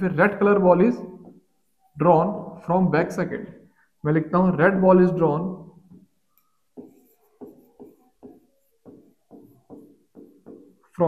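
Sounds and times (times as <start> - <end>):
stylus strokes on screen: 5.8 - 11.0.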